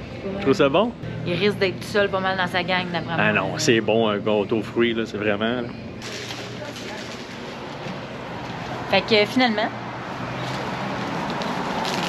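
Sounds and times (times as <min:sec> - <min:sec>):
woman speaking: 0:01.3 - 0:03.7, 0:08.9 - 0:09.8
street traffic: 0:06.0 - 0:12.0.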